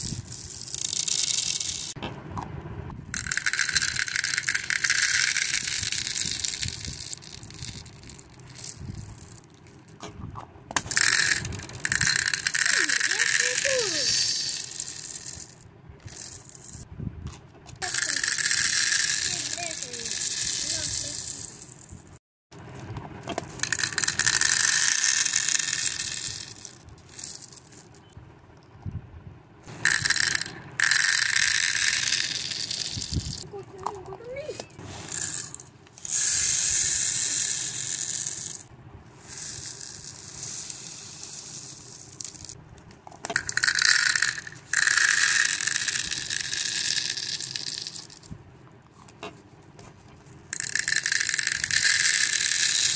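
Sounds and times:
plastic beads rattling into jar: 0.0s - 2.0s, 3.1s - 10.0s, 10.8s - 16.8s, 17.8s - 22.2s, 23.2s - 28.1s, 29.7s - 42.6s, 43.2s - 48.3s, 50.5s - 52.9s.

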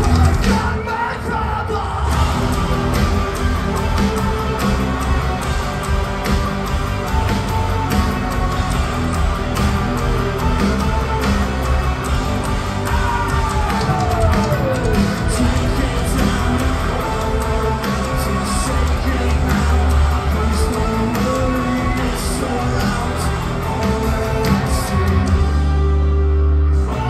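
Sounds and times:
metalcore band playing live: 0.0s - 27.0s.

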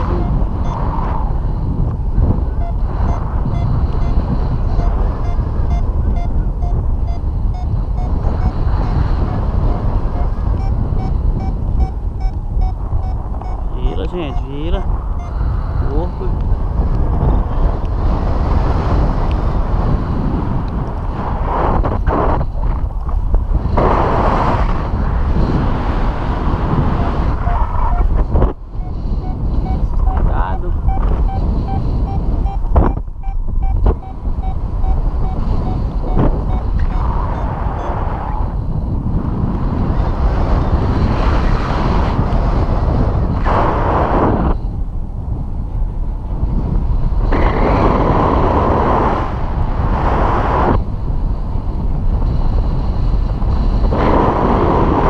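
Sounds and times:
short beeps: 0.0s - 0.8s, 2.6s - 15.4s, 28.8s - 38.0s
wind buffeting microphone: 0.0s - 55.0s.

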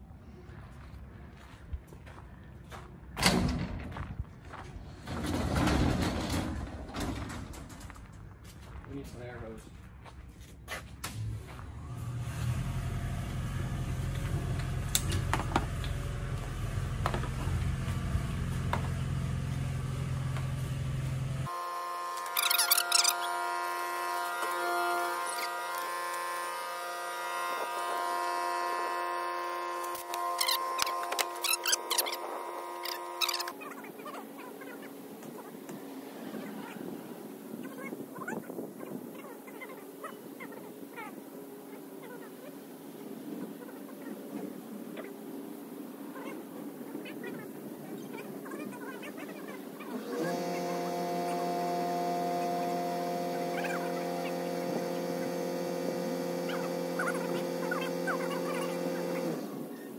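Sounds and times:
air compressor motor hum: 12.6s - 33.6s, 49.9s - 59.9s
higher-pitched hum: 13.5s - 34.8s, 49.9s - 59.9s.

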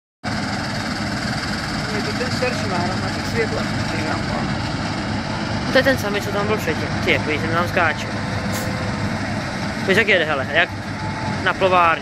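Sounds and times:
diesel machinery droning: 0.2s - 12.0s.

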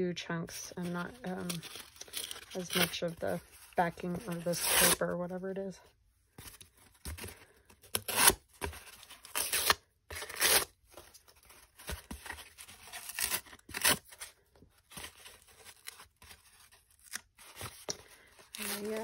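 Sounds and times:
paper tearing off cardboard: 0.9s - 5.0s, 7.9s - 10.8s, 11.8s - 14.3s.

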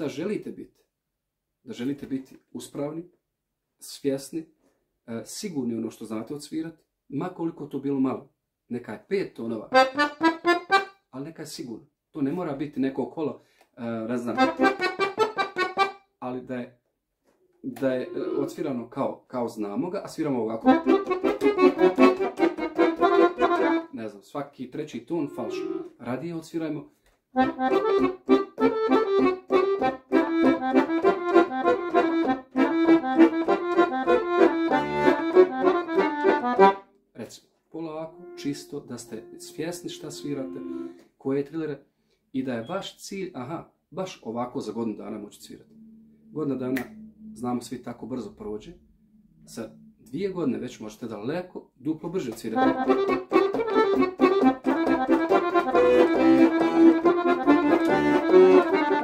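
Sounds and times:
piano accordion melody: 9.8s - 11.0s, 14.2s - 16.0s, 17.7s - 18.7s, 20.6s - 24.0s, 25.1s - 26.0s, 27.4s - 36.9s, 38.0s - 41.0s, 52.5s - 59.0s.

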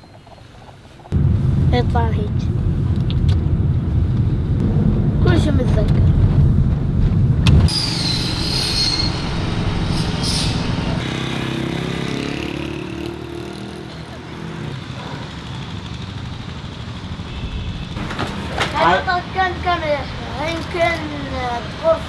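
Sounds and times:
outdoor street ambience: 0.0s - 22.0s
car cabin engine rumble: 1.1s - 7.8s
high squeal: 7.7s - 11.1s.

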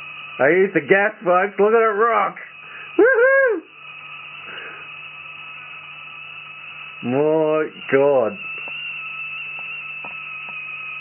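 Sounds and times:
even hiss: 0.0s - 11.0s
low hum: 0.0s - 11.0s.

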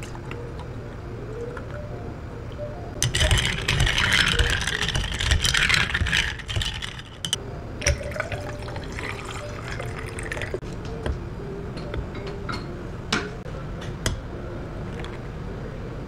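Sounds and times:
water pouring over ice: 3.0s - 6.9s, 8.0s - 10.6s.

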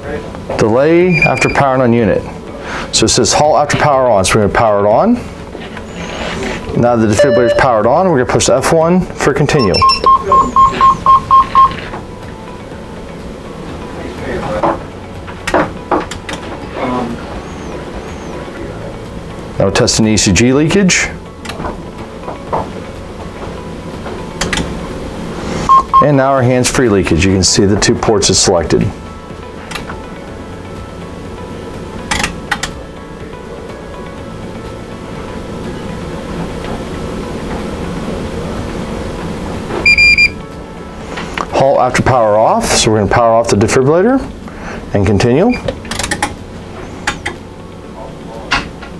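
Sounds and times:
low background hum: 0.0s - 48.9s
short high beep: 1.1s - 1.6s, 7.2s - 7.8s, 9.6s - 11.8s, 25.7s - 26.1s, 39.8s - 40.4s
relays clicking: 45.8s - 46.4s.

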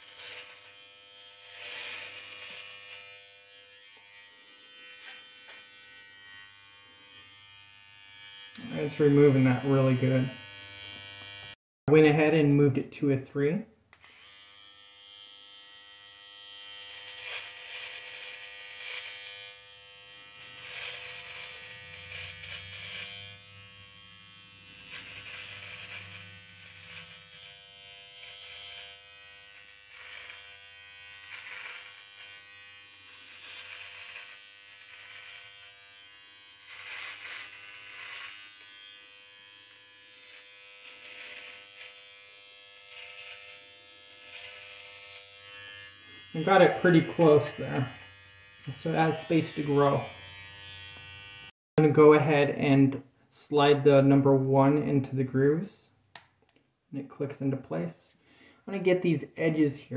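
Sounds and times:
electric trimmer buzzing: 0.0s - 11.6s, 13.9s - 51.6s.

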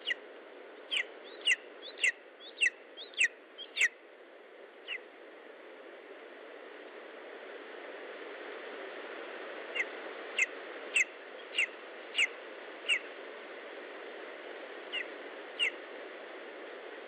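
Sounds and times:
eagle chick calling: 0.0s - 0.2s, 0.9s - 4.0s, 9.8s - 12.3s, 14.9s - 15.8s
background hiss: 0.0s - 17.0s.

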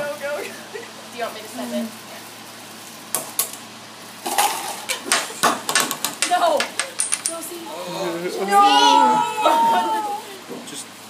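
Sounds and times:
marbles clattering on wooden rail: 4.3s - 7.6s.

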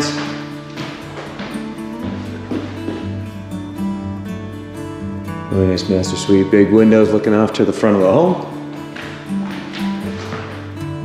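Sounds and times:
background music held notes: 0.0s - 11.0s.

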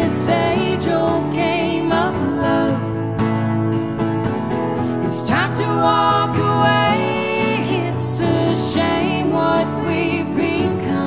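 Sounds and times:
acoustic guitars: 0.0s - 11.0s
voices singing long notes: 5.2s - 11.0s.

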